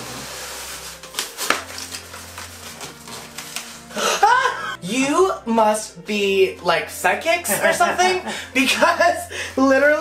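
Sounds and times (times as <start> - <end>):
cardboard box rustling: 0.0 - 3.9.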